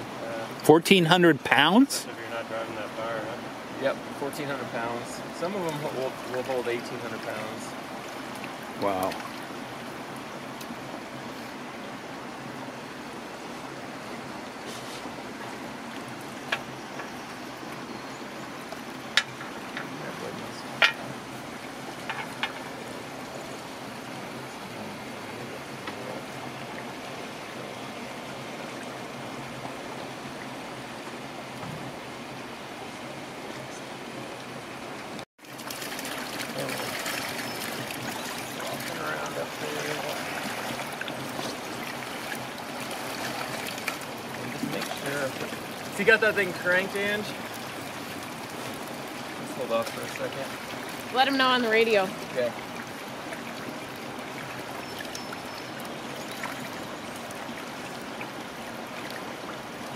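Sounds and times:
flowing water rushing: 0:00.0 - 0:59.9.

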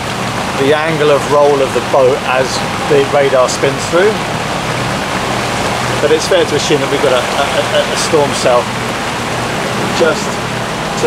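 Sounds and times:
low steady hum: 0:00.0 - 0:11.0
rain: 0:00.0 - 0:11.0
sea waves breaking: 0:00.0 - 0:11.0.

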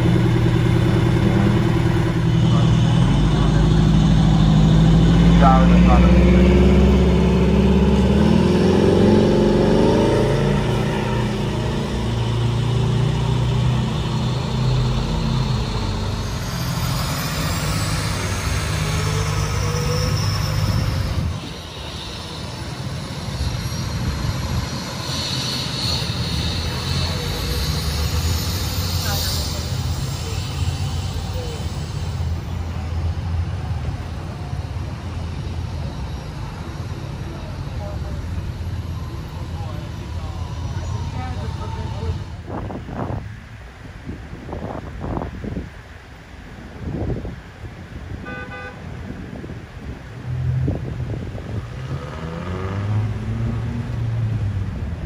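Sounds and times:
fire engines idling: 0:00.0 - 0:07.2, 0:10.7 - 0:44.4
indistinct voices: 0:00.0 - 0:32.8.

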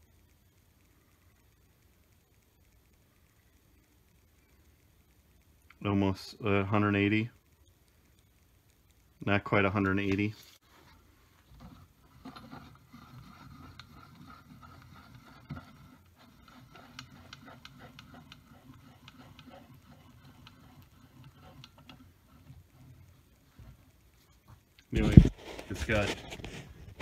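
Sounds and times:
faint steady whir: 0:00.0 - 0:27.0.

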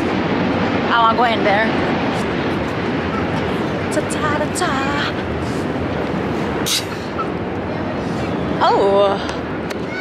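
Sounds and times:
city vehicle noise: 0:00.0 - 0:10.0
short high hiss: 0:06.6 - 0:07.0.

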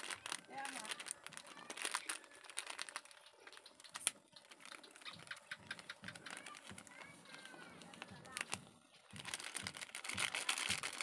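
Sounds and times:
plastic sachet crinkling: 0:00.0 - 0:11.0.

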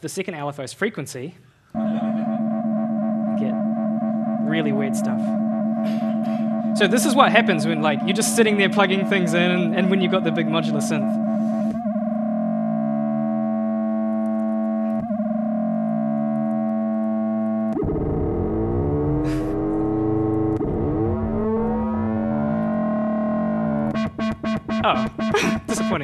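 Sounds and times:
synthesizer buzzing tone: 0:01.8 - 0:26.0.

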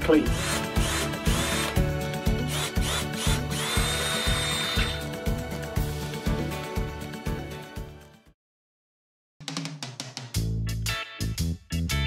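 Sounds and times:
background music with steady beat: 0:00.0 - 0:08.2, 0:09.4 - 0:12.0
cordless drill boring wood: 0:00.2 - 0:05.1.

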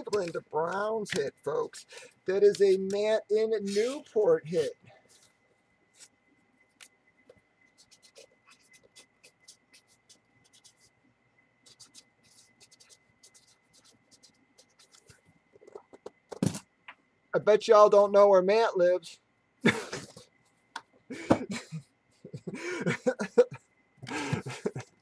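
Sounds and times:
marker scratching on paper: 0:03.6 - 0:05.3, 0:07.7 - 0:10.9, 0:11.6 - 0:15.2.

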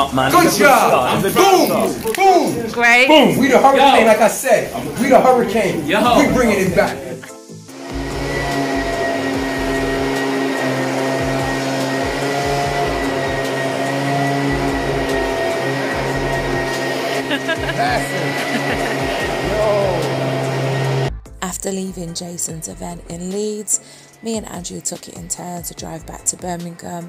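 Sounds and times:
floor cleaner humming and whining: 0:07.7 - 0:21.1
person speaking: 0:17.4 - 0:20.1.

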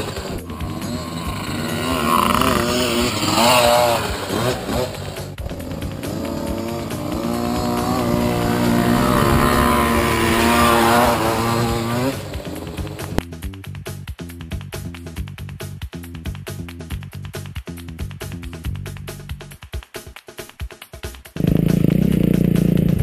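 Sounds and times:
dirt bike engines revving: 0:00.0 - 0:13.2, 0:21.4 - 0:23.0.

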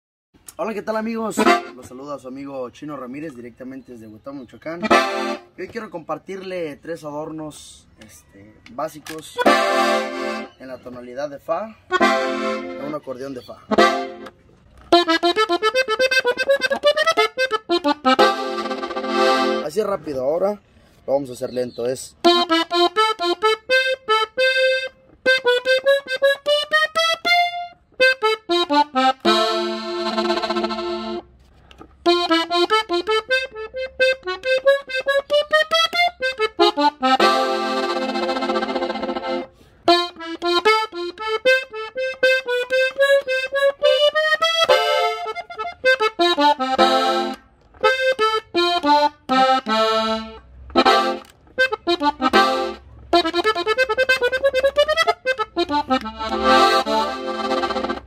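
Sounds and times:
button accordion playing runs: 0:01.3 - 0:01.9, 0:04.8 - 0:05.6, 0:09.3 - 0:10.5, 0:11.9 - 0:13.0, 0:13.7 - 0:19.8, 0:22.2 - 0:31.3, 0:32.0 - 0:58.0.

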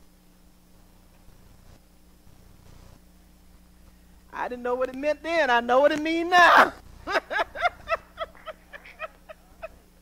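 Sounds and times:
woman laughing: 0:06.5 - 0:10.0.

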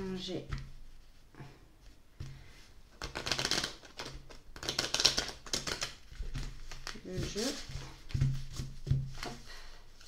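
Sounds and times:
cards riffle-shuffled: 0:03.0 - 0:09.5.

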